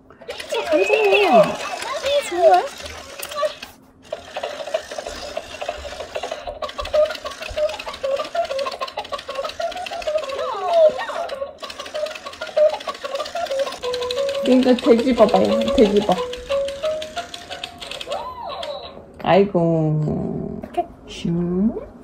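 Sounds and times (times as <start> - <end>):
toy mechanism ticking rapidly: 0.2 - 19.0
toy playing a sung children's tune: 6.6 - 19.0.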